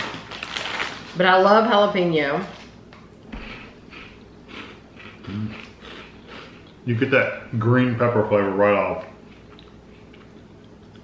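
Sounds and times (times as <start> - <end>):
person chewing crispy snack: 0.0 - 1.1, 3.5 - 6.9, 9.0 - 11.0.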